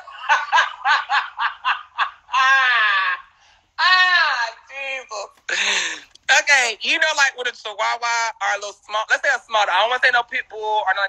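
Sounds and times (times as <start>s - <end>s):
man laughing hard: 0.0s - 3.3s.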